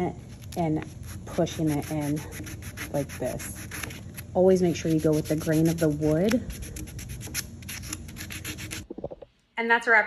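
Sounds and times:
sandpaper rubbing on wood: 0:00.3 - 0:08.9.

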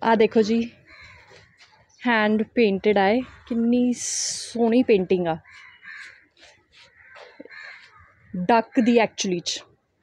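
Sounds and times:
faint bird calls: 0:00.8 - 0:01.9, 0:05.4 - 0:08.9.

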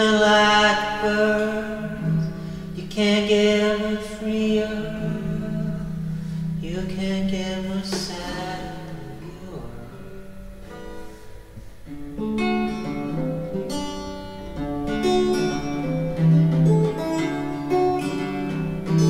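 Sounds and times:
acoustic guitar picking and strumming: 0:00.0 - 0:19.0.

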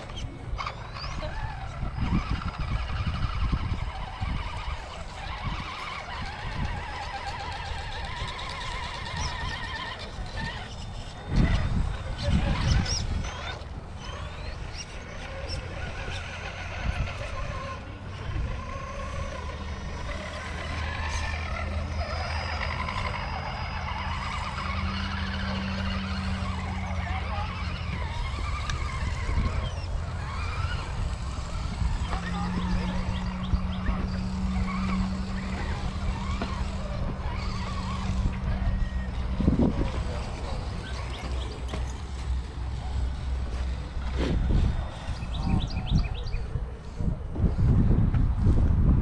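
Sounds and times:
people talking outdoors: 0:00.0 - 0:48.4
steady low hum: 0:00.0 - 0:49.0.

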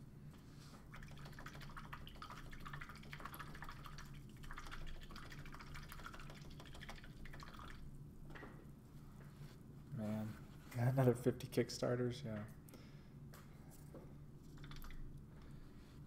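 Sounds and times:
paintbrush rinsed in water: 0:00.8 - 0:08.0.

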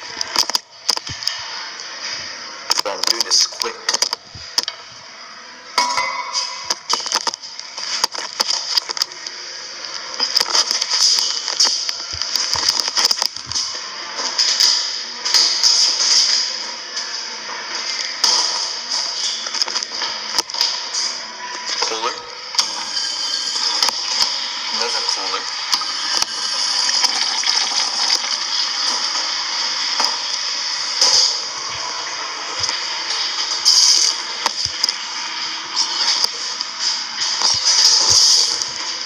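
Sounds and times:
indistinct background voices: 0:01.0 - 0:05.7.

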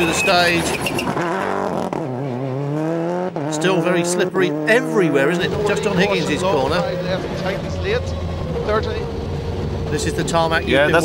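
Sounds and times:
tyre and road noise: 0:00.0 - 0:11.0
car engine running high pitch: 0:02.8 - 0:11.0.

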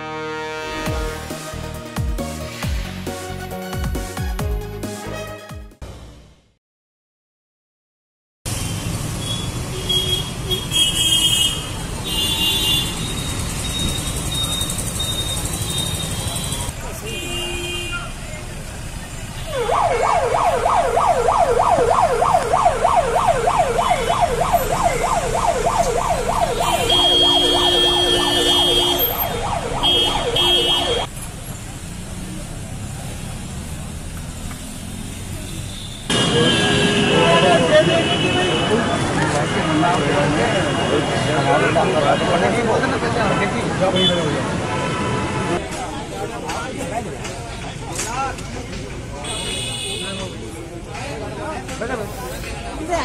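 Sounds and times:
road traffic: 0:00.0 - 0:06.6, 0:08.5 - 0:53.0
siren yelping: 0:19.5 - 0:31.1
car horn beeps: 0:26.5 - 0:31.1, 0:49.2 - 0:50.4.

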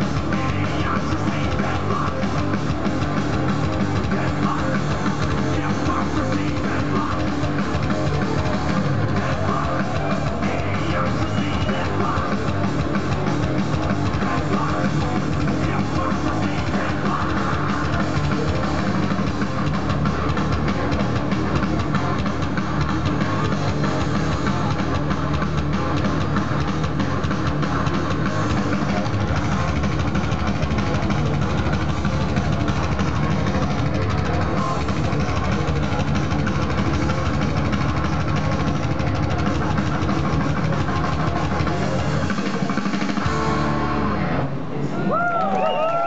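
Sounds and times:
fast drum hits: 0:00.0 - 0:43.7
distorted electric guitar riffing: 0:00.0 - 0:45.1
thrash metal band playing: 0:00.0 - 0:45.1.

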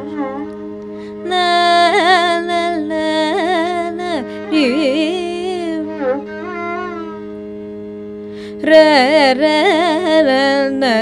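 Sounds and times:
violin melody: 0:00.0 - 0:11.0
woman singing: 0:01.1 - 0:06.3, 0:08.5 - 0:11.0.

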